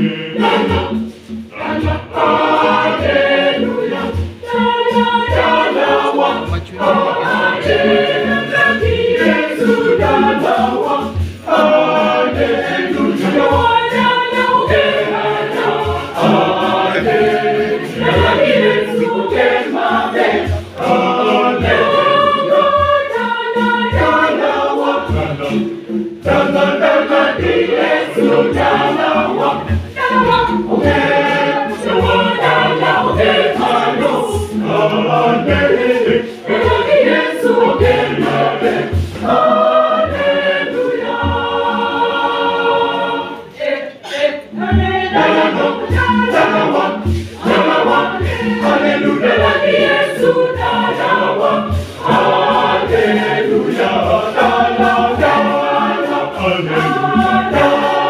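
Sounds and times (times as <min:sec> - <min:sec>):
choir singing in parts: 0:00.0 - 0:58.0
hand drums steady beat: 0:00.0 - 0:58.0.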